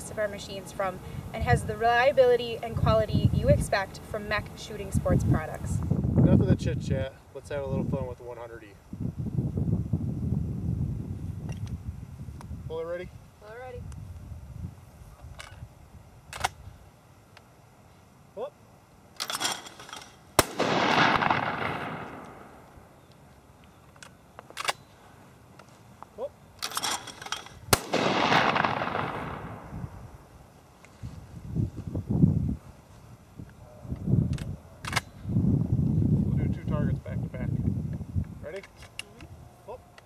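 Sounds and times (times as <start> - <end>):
shotgun shots echoing: 20.4 - 22.6, 27.7 - 29.7.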